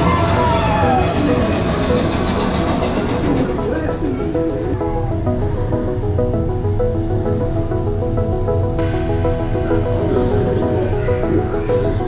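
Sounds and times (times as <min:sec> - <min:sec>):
roller coaster rushing along track: 0:00.0 - 0:12.0.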